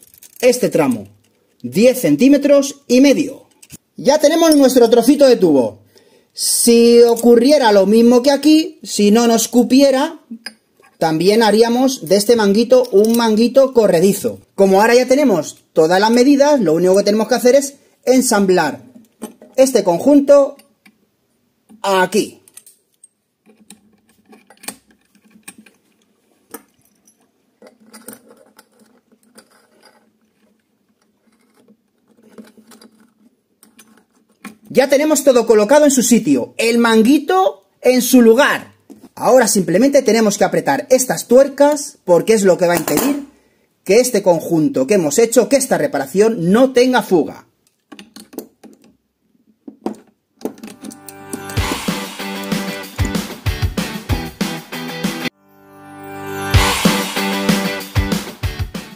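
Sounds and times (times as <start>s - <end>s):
wrenches clicking on metal: 0.0s - 1.4s, 3.4s - 3.8s
metal pipe fittings clinking: 10.3s - 11.0s, 22.4s - 30.1s
background music with heavy beat: 51.0s - 55.3s, 56.1s - 58.9s.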